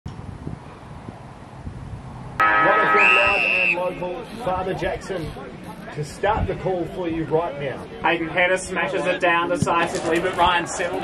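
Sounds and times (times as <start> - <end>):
held high tone: 2.4 - 4.6
steady tones: 2.4 - 5.7
voices: 2.4 - 11.0.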